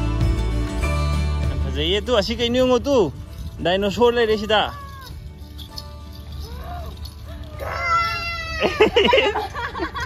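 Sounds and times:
person squealing excitedly: 6.5s - 9.1s.

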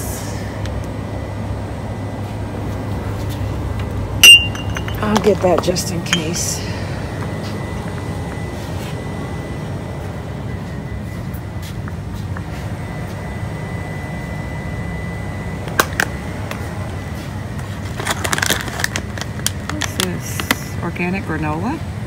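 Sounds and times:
low rumble of shop ambience: 0.0s - 22.0s
faint high steady tone: 4.2s - 11.8s.

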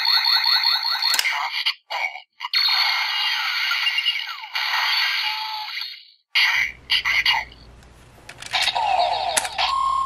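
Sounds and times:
plastic toy clicks: 8.3s - 9.6s.

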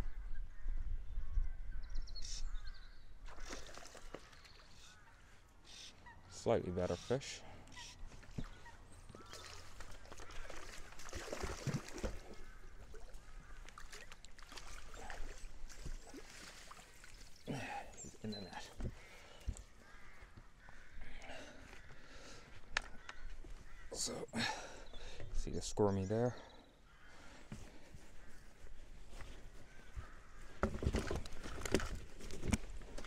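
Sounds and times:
fish splashing at the surface: 3.3s - 4.6s, 9.2s - 13.1s
short pitched calls: 6.9s - 9.6s.

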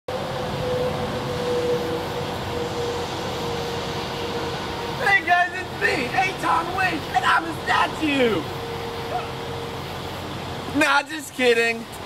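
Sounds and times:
steady hum and hiss: 0.1s - 12.0s.

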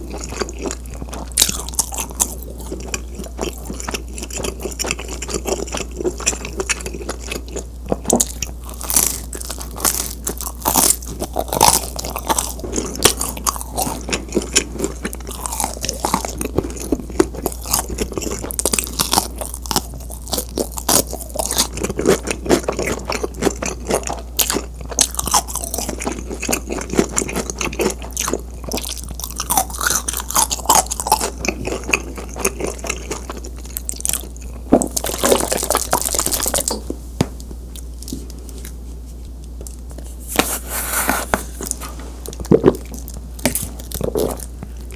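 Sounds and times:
chewing crunchy pizza crust: 0.0s - 37.0s, 37.7s - 44.9s.

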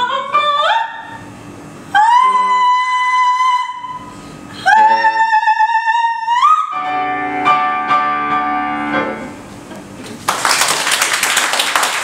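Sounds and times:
operatic soprano singing: 1.9s - 4.0s, 4.6s - 6.8s
piano accompaniment: 6.7s - 9.7s.

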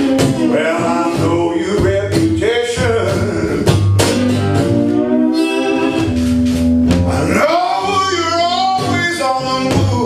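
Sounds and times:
man singing: 0.0s - 3.8s, 7.0s - 10.0s
acoustic guitar playing: 0.0s - 10.0s.

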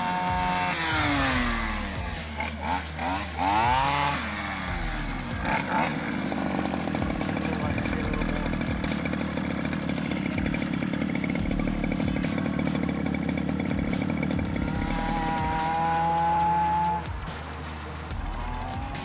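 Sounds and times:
small two-stroke engine idling: 0.0s - 19.0s.

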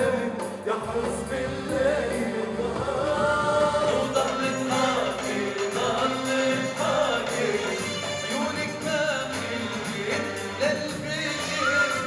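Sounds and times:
band playing pop music: 0.0s - 12.0s
man singing into a microphone: 0.0s - 12.0s
voices singing together: 0.0s - 12.0s.

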